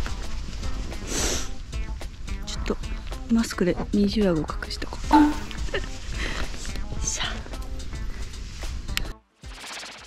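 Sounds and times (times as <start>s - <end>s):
woman laughing: 5.2s - 6.6s.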